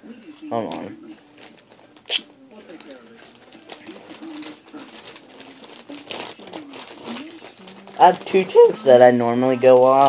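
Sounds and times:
small objects clicking and rattling: 2.7s - 8.6s.

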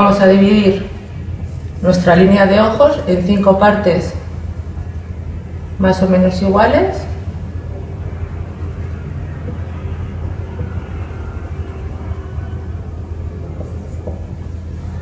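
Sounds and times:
low background rumble: 0.0s - 15.0s.

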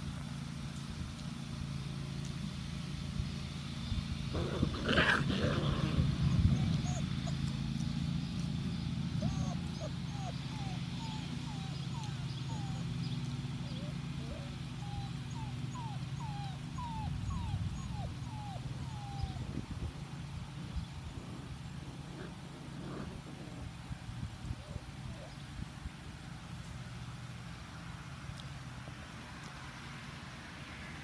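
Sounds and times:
puppies whining and yipping: 5.9s - 7.5s, 9.2s - 19.6s.

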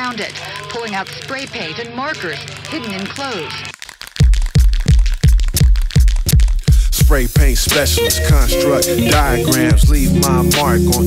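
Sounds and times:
hip hop beat with deep bass: 0.1s - 11.0s.

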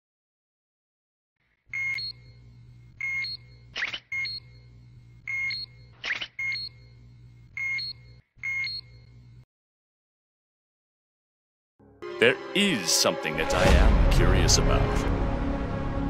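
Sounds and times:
steady low hum: 1.7s - 9.4s.

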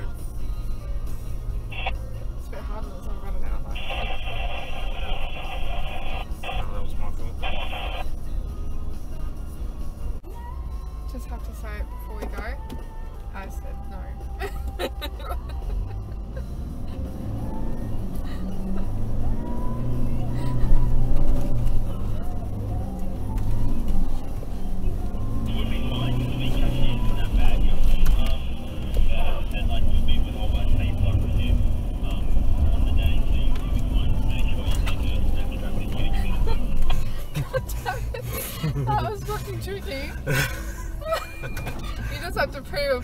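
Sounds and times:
diesel engine labouring: 0.0s - 43.0s.

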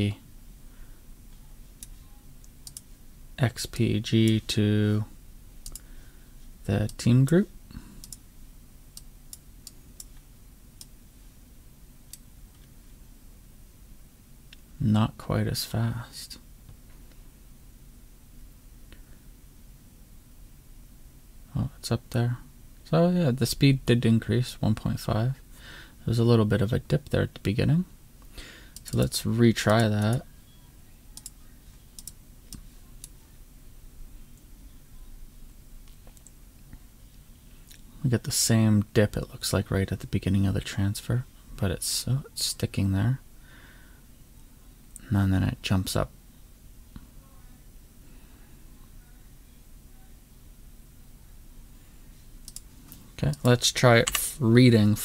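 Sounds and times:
low steady hum: 0.0s - 55.0s
faint computer mouse clicks: 8.0s - 8.2s, 31.2s - 31.4s, 32.0s - 33.2s.

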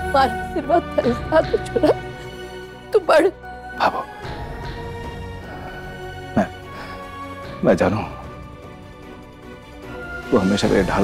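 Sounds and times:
dramatic orchestral score: 0.0s - 11.0s.

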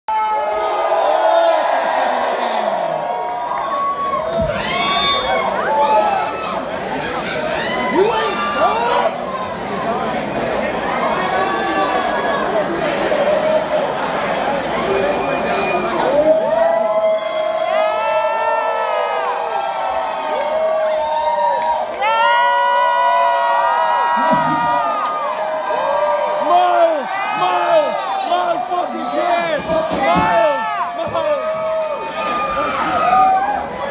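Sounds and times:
crowd cheering and shouting: 0.1s - 33.9s.

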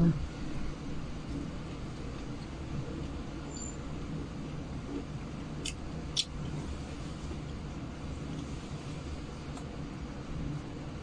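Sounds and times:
steady low hum: 0.0s - 11.0s
sharp eating click: 5.6s - 6.4s.

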